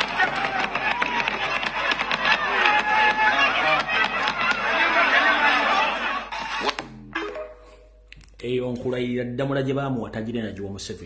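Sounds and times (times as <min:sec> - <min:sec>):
man talking: 0:08.3 - 0:11.0.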